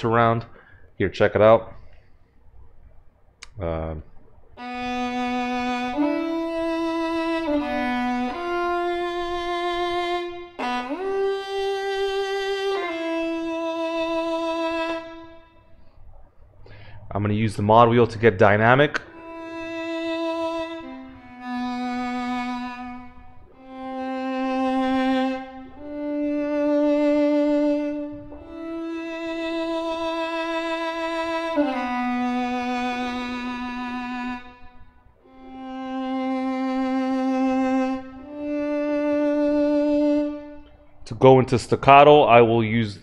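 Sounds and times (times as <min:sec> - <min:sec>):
solo violin slow melody: 0:04.5 - 0:15.9, 0:19.0 - 0:41.0.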